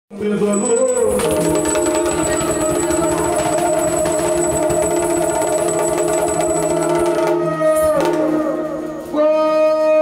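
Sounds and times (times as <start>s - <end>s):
drone of held tones: 0.6s - 9.0s
fast hand drumming on barrel drum: 0.8s - 8.4s.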